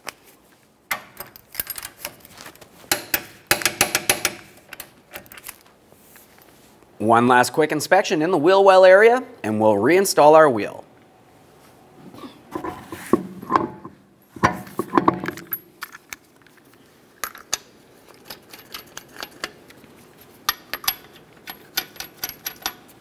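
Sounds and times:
lug nuts clinking together: 20.5s - 22.9s.

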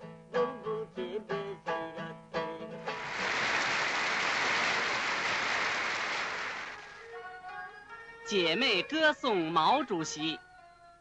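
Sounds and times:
audience applauding: 2.9s - 7.0s.

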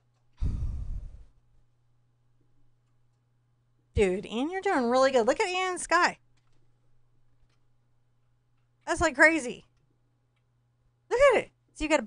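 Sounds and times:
faint steady hum: 0.0s - 12.0s
person sighing: 0.4s - 1.3s.

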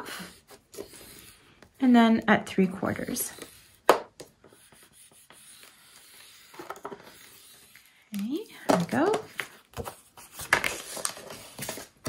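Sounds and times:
stylus scratching on cardstock: 3.0s - 3.8s, 4.5s - 7.9s.

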